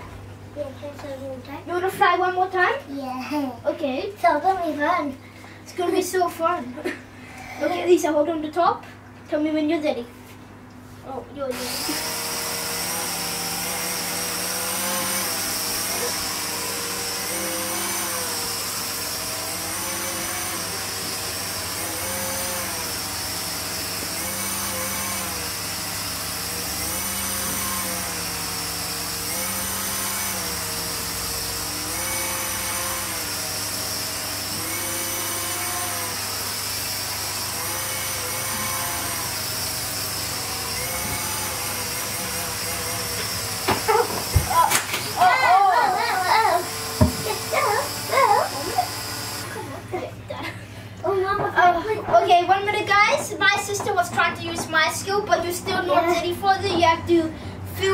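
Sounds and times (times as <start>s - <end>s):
toy flying saucer motor whining: 11.5s - 49.8s.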